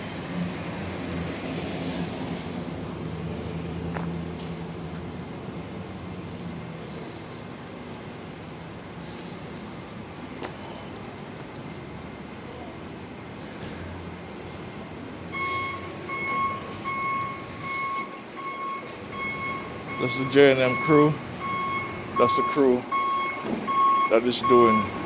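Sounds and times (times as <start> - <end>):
engine and traffic rumble: 0.0 - 25.0
reversing alarm beeping: 15.3 - 25.0.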